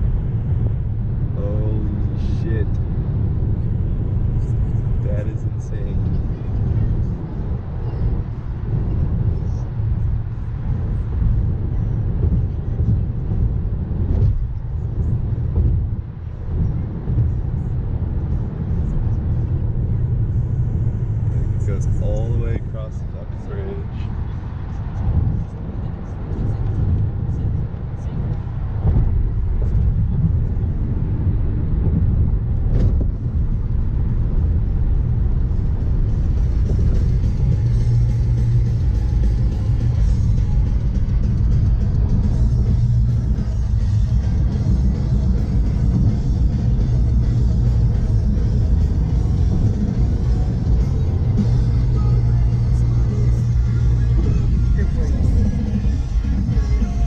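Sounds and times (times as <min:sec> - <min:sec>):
car cabin rumble: 0:00.0 - 0:57.0
music playing: 0:35.8 - 0:57.0.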